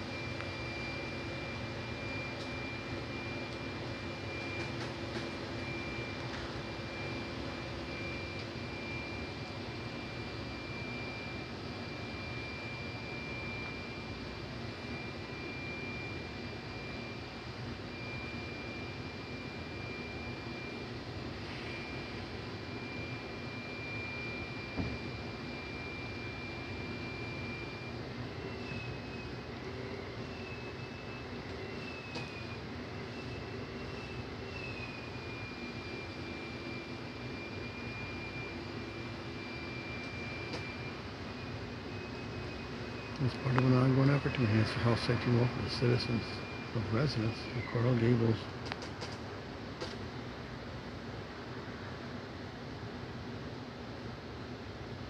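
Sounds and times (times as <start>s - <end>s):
machine drone with whine: 0.0s - 55.0s.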